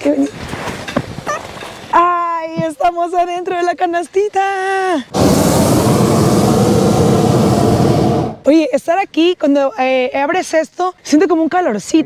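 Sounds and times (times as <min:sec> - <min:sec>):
gas burner blasting: 0:05.1 - 0:08.5.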